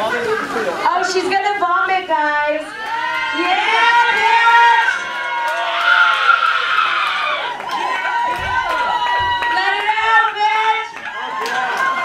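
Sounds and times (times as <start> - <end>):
crowd noise hiss: 0.0 - 12.0.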